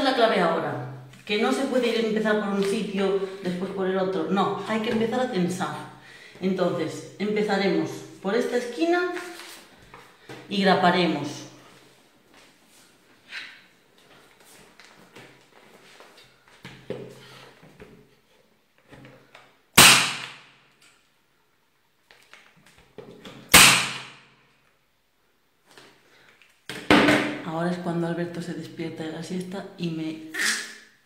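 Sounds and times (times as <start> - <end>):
electric staple gun firing: 19.8 - 20.4, 23.5 - 24.1.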